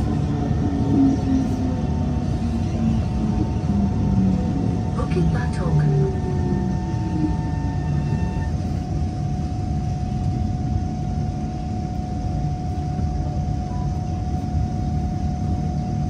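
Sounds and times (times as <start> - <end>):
constant train whine: 0.0 - 16.0
train rumble inside carriage: 0.0 - 16.0.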